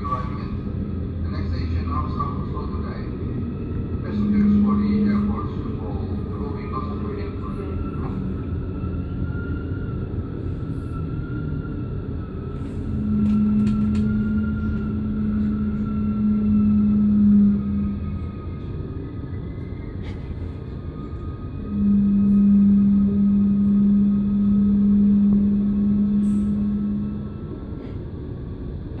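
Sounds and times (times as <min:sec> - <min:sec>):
electric train rumble and whine: 0:00.0 - 0:29.0
long low hums: 0:00.0 - 0:29.0.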